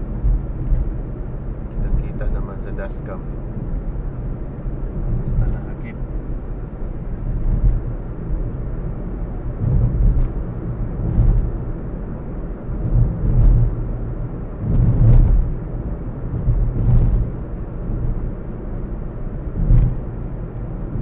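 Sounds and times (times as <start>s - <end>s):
car interior rumble: 0.0s - 21.0s.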